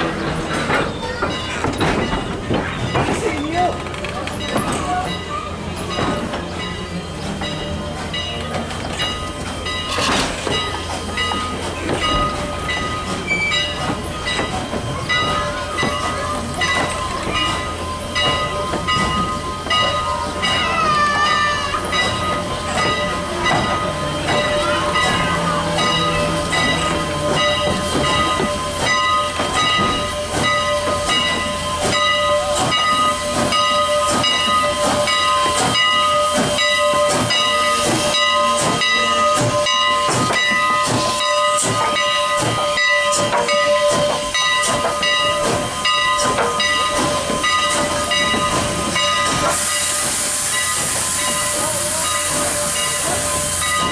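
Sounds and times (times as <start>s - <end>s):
steam locomotive hissing steam: 0.0s - 53.9s.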